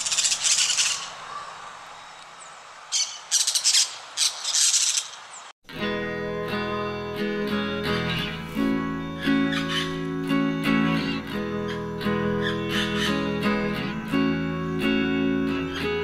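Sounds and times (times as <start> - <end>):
parakeet screeching: 0.0 - 1.5, 2.9 - 5.2, 9.5 - 9.9, 12.4 - 13.2
outdoor background hiss: 0.0 - 16.0
strummed acoustic guitar music: 5.7 - 16.0.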